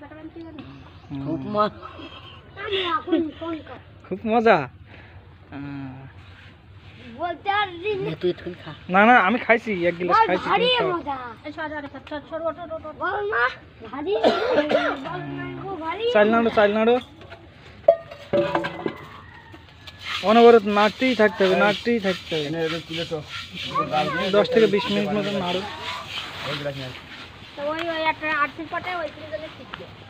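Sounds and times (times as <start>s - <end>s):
person coughing: 14.2s - 15.1s.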